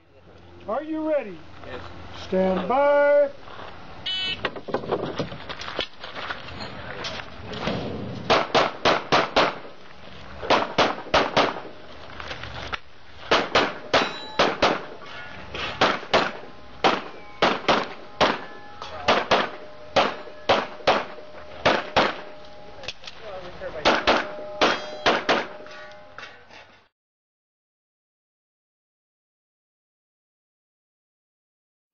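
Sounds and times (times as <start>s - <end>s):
pistol shots: 8.3s - 9.8s, 10.4s - 11.8s, 13.3s - 15.0s, 15.8s - 22.4s, 23.8s - 25.6s
steel targets ringing: 13.7s - 15.0s, 16.0s - 23.0s, 23.6s - 26.5s.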